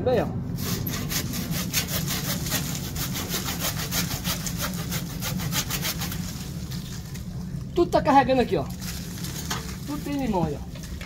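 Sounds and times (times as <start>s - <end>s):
hand saw cutting wood: 0.6s - 6.6s.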